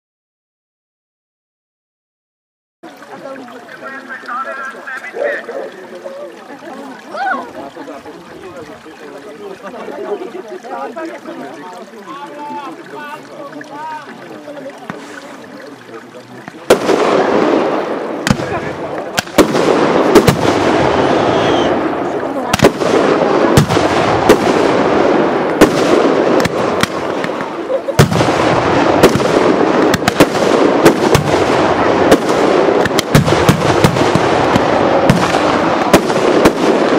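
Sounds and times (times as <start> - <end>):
fireworks crackling hiss: 14.8 - 15.7, 16.4 - 36.9
fireworks bangs: 16.5 - 36.9.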